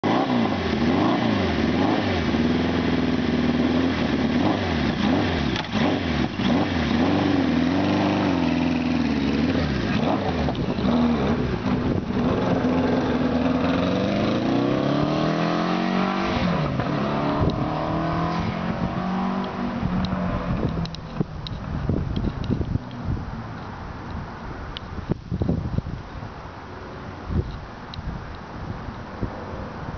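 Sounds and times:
motorcycle accelerating away: 0.0 - 21.3
motorcycle engine revving: 0.0 - 22.8.

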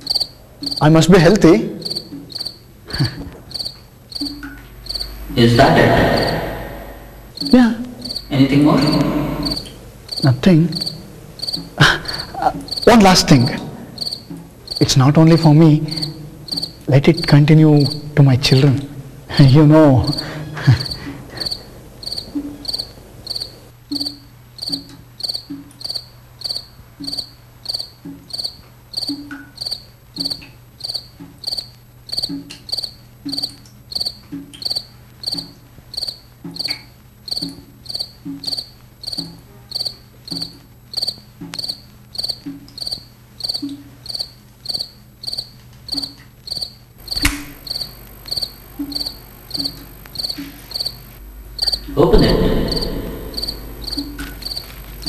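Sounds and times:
crickets chirping: 0.0 - 55.0.

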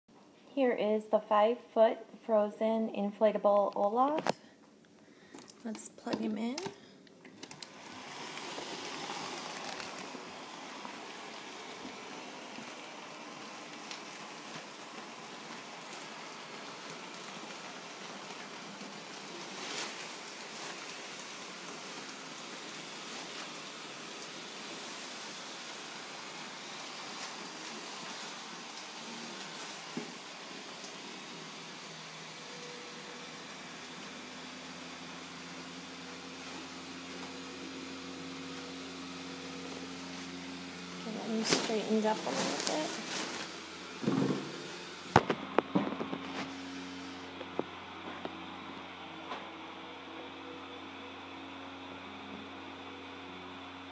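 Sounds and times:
blower fan rushing air: 7.4 - 50.0.

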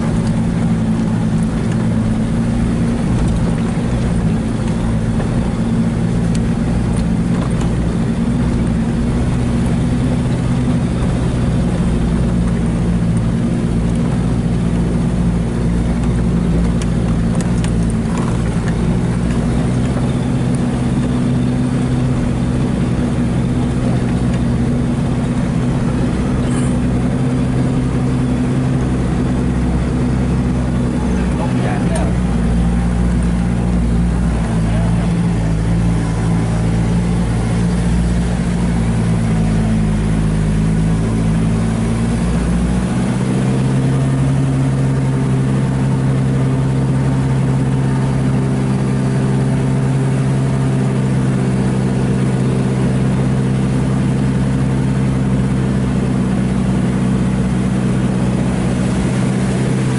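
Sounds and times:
vehicle engine running: 0.0 - 59.9.

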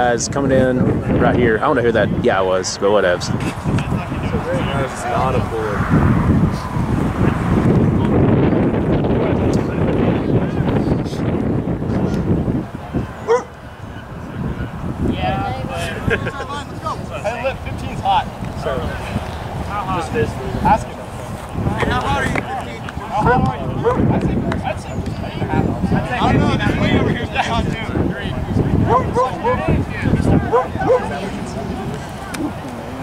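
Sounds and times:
wind rumble on microphone: 0.0 - 33.0
dog yapping: 13.2 - 13.5.

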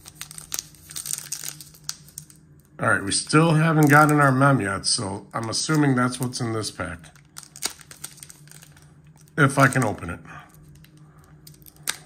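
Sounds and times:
card pack wrapper crinkling: 0.0 - 2.4, 7.0 - 12.0.

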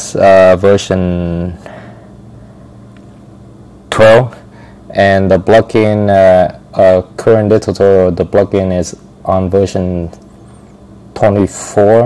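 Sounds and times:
faint microphone hiss: 0.0 - 12.0
low steady hum: 0.0 - 12.0.

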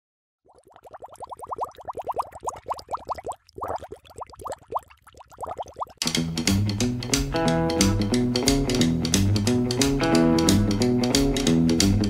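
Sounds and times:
rising cartoon bloop pops: 0.5 - 6.0.

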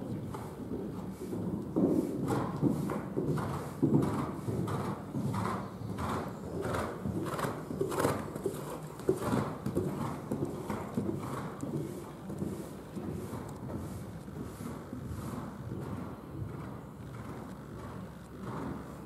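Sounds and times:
horse hoofbeats cantering on sand: 0.0 - 19.0.

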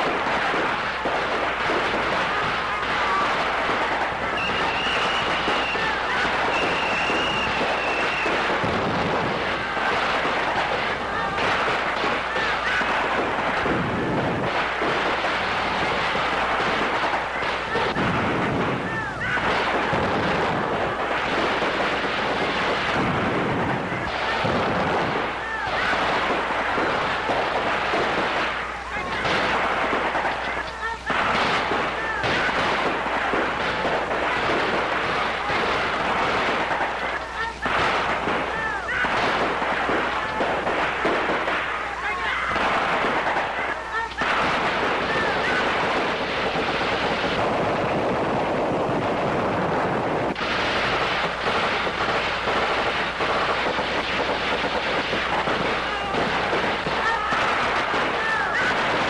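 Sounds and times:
dense gunfire: 0.0 - 59.0
explosions: 0.0 - 59.0.

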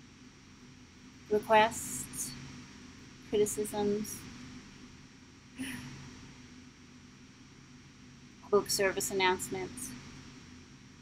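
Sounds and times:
faint steady hiss: 0.0 - 11.0
low hum: 0.0 - 11.0.

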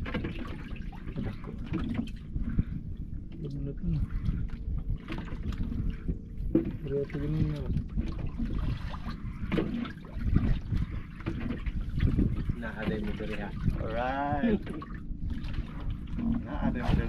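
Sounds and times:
water sloshing against boat hull: 0.0 - 17.0
wind buffeting microphone: 0.0 - 17.0.

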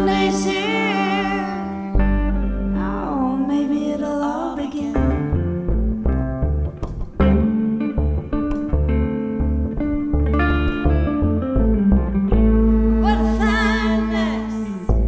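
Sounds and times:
electric guitar picked notes: 0.0 - 15.0
plucked upright bass: 0.0 - 15.0.

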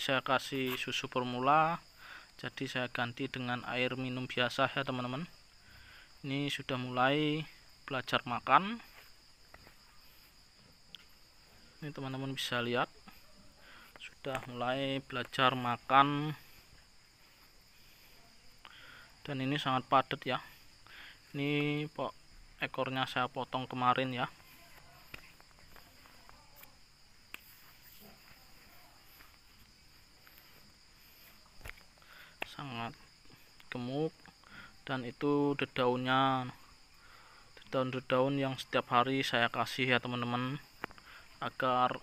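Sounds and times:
crickets trilling: 0.0 - 42.0
insects chirring: 0.0 - 42.0.

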